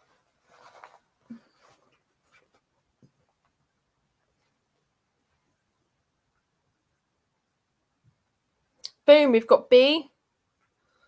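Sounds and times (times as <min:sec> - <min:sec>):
faint handling sounds: 0:00.0 - 0:06.6.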